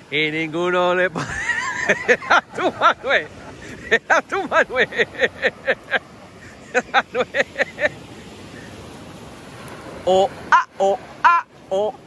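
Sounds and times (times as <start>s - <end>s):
waves on pebble beach: 0.0s - 12.0s.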